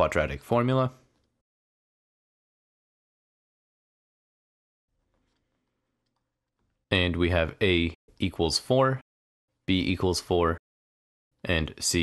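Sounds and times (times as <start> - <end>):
person speaking: 9.6 - 10.6.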